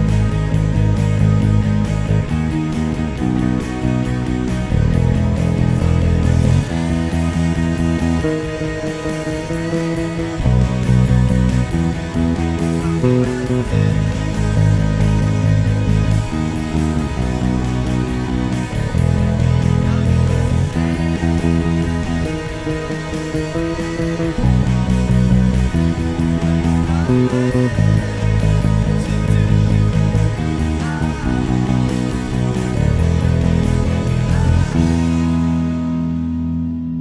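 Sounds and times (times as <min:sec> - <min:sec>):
electric bass line: 0:00.0 - 0:37.0
rock band playing: 0:00.0 - 0:37.0.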